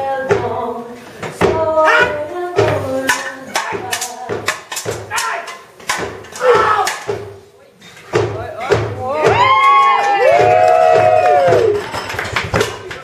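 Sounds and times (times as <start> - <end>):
swords clashing on steel shield: 3.0 - 7.3.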